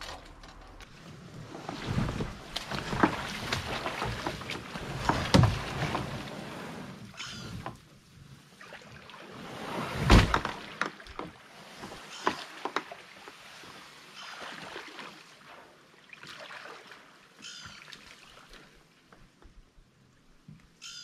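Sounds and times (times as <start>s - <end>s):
kayak dragged through grass: 0.9s - 8.3s, 9.2s - 12.4s.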